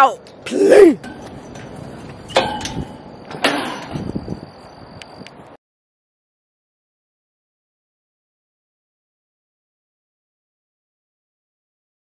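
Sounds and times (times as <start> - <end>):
metal gate clanking: 0.8 - 4.5
gate ringing squeal: 0.9 - 5.3.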